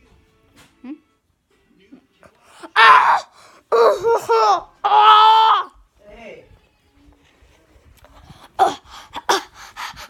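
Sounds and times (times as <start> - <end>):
boy crying out: 2.6 - 5.8, 8.4 - 9.5.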